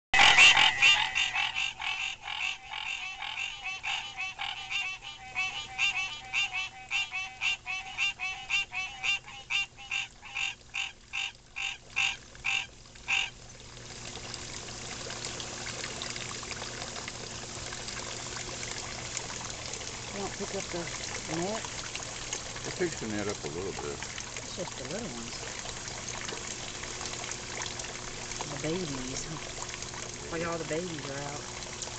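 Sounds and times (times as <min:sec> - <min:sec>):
frogs croaking in chorus: 0:00.2 - 0:13.4
pond water trickling: 0:00.2 - 0:31.9.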